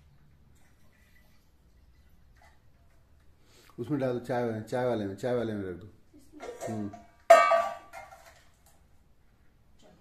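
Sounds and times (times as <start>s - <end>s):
steel utensils clanging: 6.4s - 8.4s.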